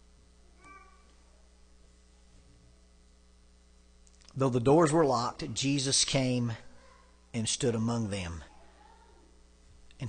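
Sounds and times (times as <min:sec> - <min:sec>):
faint squeak: 0:00.6 - 0:01.1.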